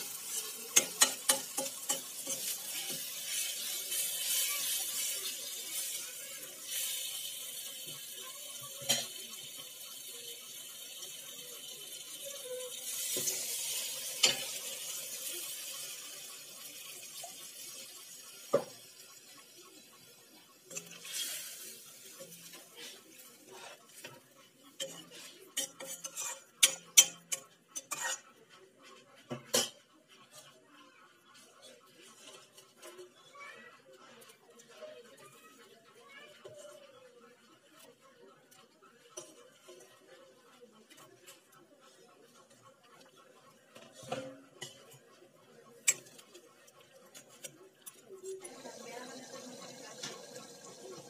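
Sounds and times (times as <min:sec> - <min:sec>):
masala sizzling in a pan: 0:00.0 - 0:28.6, 0:43.7 - 0:45.1, 0:45.8 - 0:51.0.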